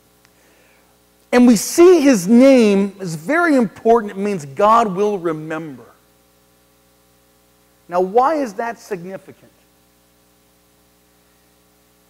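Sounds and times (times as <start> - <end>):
electrical mains hum: 0.0 - 12.0
person speaking: 1.3 - 6.0, 7.9 - 9.6.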